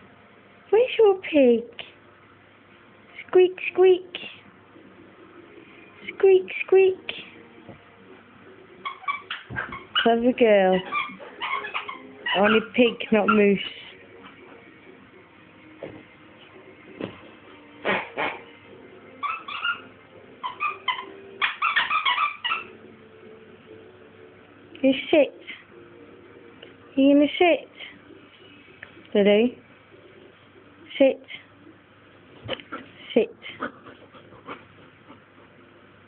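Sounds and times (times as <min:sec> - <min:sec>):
squeaky toy squeaking: 0:08.8 - 0:13.6, 0:19.2 - 0:22.8
puppy making faint sounds: 0:08.8 - 0:14.8, 0:32.5 - 0:35.8.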